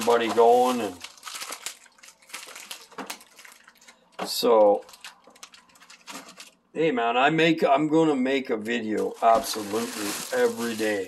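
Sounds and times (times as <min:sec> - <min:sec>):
faint crackling and clicks: 0:04.6 - 0:06.6.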